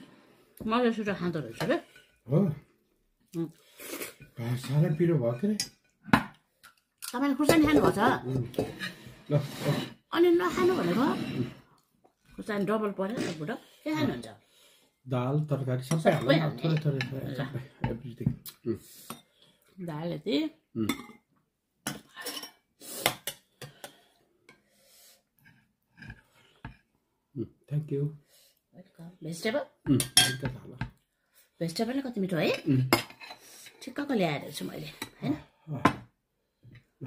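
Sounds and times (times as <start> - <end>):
person talking: 16.0 - 17.6
cutlery clinking on plates: 29.9 - 30.6.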